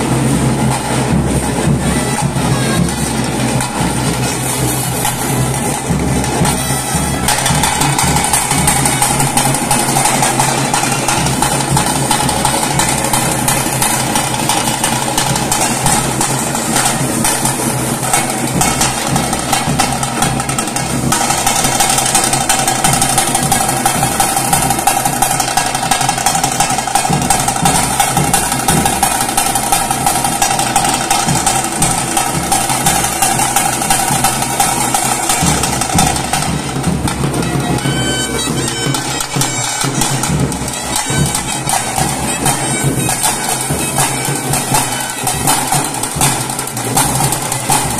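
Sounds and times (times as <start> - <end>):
drums fast steady beat: 0.0 - 47.9
reedy wind instrument note: 6.3 - 11.8, 35.1 - 46.3.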